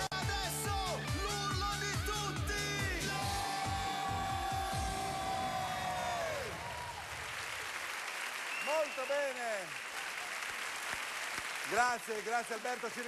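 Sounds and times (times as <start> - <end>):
pop dance song with held note: 0.0 - 6.5
audience applauding: 3.1 - 13.0.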